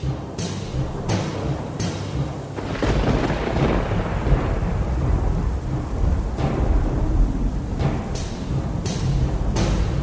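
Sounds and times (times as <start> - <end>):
steady rain: 0.0 - 10.0
rolling rumble of thunder: 2.4 - 10.0.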